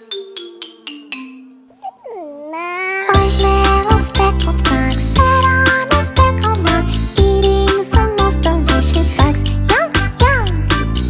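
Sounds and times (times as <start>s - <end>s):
xylophone-like run: 0.0s - 1.9s.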